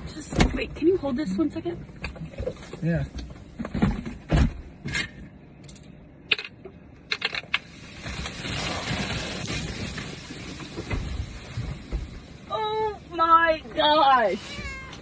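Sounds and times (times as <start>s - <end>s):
fizzing hiss of spraying soda: 7.6s - 12.5s.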